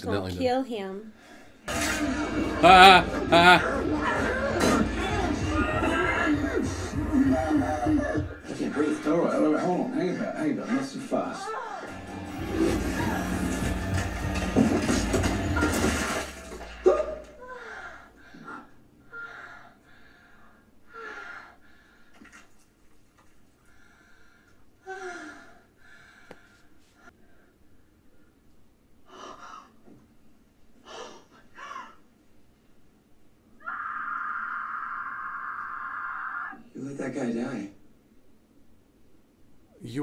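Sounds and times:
rumbling and clattering soundtrack: 11.9 - 17.3.

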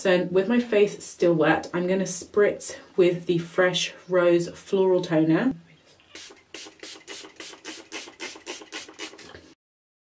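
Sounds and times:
spray bottle hissing sprays: 6.1 - 9.6.

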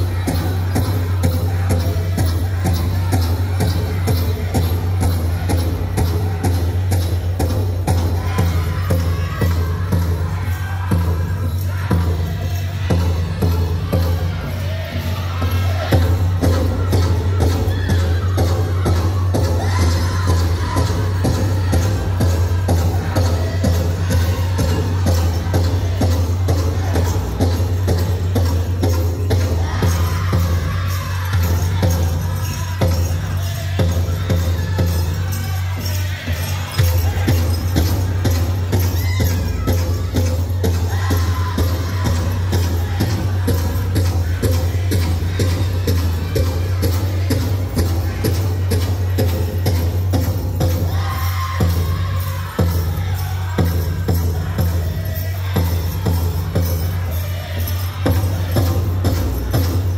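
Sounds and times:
large drum steady beat: 0.0 - 59.9.

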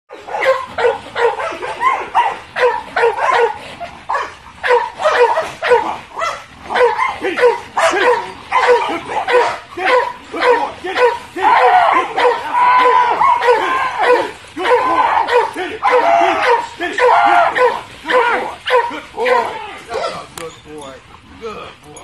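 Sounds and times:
large dog barking: 0.1 - 20.3.

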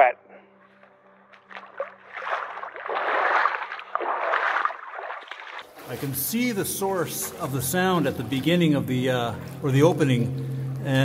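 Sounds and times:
feet wading in water: 1.3 - 11.0
water sloshing and splashing: 1.3 - 11.0.

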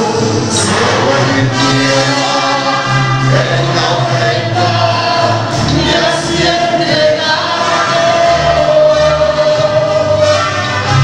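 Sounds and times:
mariachi band playing: 0.0 - 11.0
voices singing: 0.0 - 11.0.

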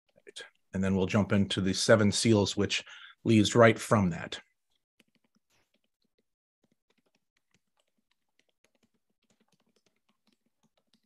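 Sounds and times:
faint clicking and tapping: 4.4 - 11.0.

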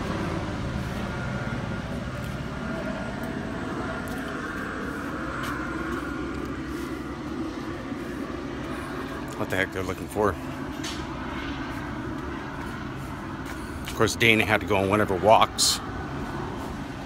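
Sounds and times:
helicopter drone: 0.0 - 17.0.

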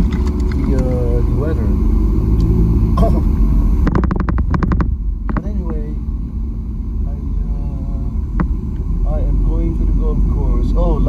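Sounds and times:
car cabin road and engine noise: 0.0 - 11.0
rapid sharp clicks: 3.9 - 5.7.

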